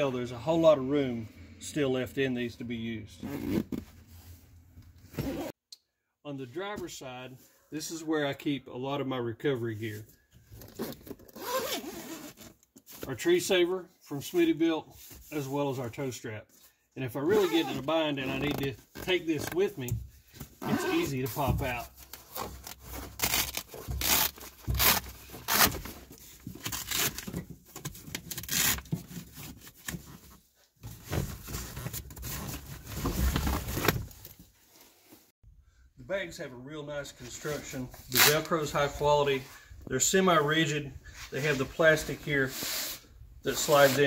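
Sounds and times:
zipper pulled open: 3.2 - 3.9, 5.1 - 5.5, 10.6 - 12.5
hook-and-loop fastener ripping: 22.1 - 25.9, 26.6 - 27.4, 28.1 - 29.0.

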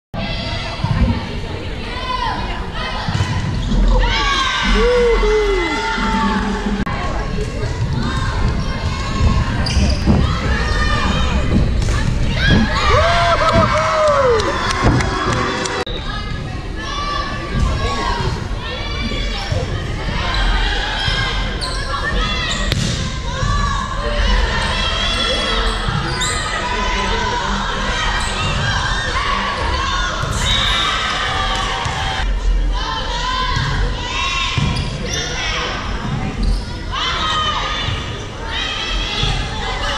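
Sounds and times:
players' voices: 0.2 - 39.9
sneakers squeaking on hardwood: 8.4 - 12.8.

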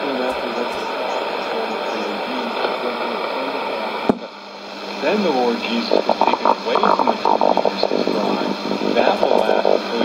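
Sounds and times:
weak radio voice: 0.0 - 4.3, 5.0 - 10.0
radio static hiss: 0.0 - 10.0.

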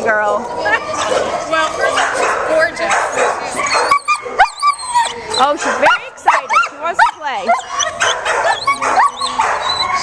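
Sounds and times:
dog whining and yipping: 3.6 - 10.0.

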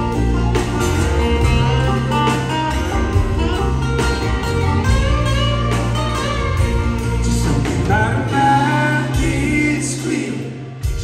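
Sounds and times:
lead guitar line: 0.0 - 11.0
live country band playing: 0.0 - 11.0.

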